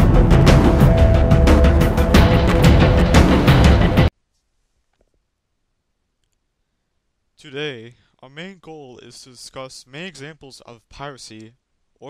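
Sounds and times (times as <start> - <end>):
person narrating: 7.4 - 11.6.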